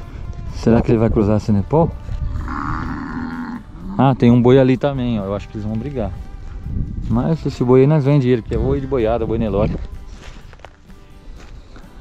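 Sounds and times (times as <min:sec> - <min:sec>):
cow bellowing: 0:02.3 - 0:04.5.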